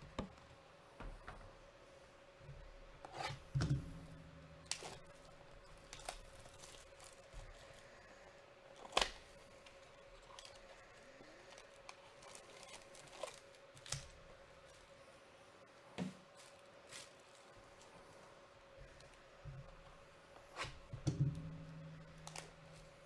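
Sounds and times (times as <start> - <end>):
faint steady hum: 0.0 - 23.0
cellophane crackling: 4.6 - 7.8, 8.8 - 14.8, 22.0 - 23.0.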